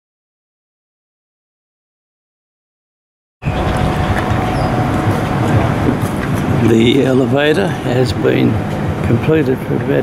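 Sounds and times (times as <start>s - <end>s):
low rumble of traffic: 3.4s - 10.0s.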